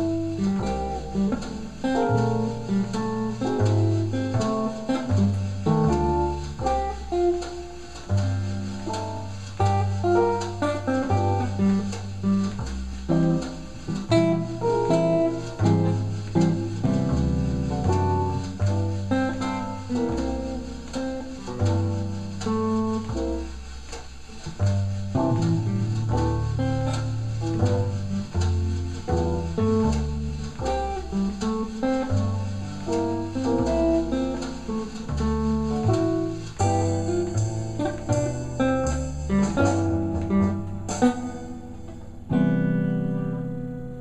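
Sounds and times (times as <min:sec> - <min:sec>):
electric guitar playing jazz ballad: 0:00.0 - 0:44.0
jazz backing track with bass: 0:00.0 - 0:44.0.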